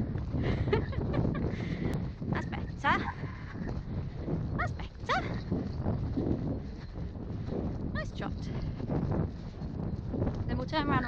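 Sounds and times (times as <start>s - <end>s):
hoofbeats on wet grass: 0.0s - 11.0s
wind buffeting camera mic: 0.0s - 11.0s.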